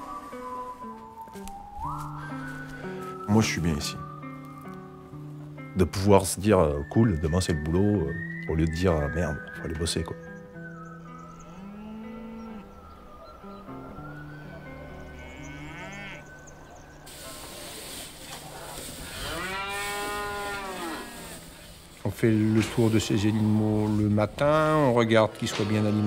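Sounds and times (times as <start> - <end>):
soft music of sustained notes: 0.0 - 26.0
cattle mooing: 11.4 - 12.8, 14.7 - 16.4, 18.5 - 21.5
rustling barn backdrop: 15.2 - 26.0.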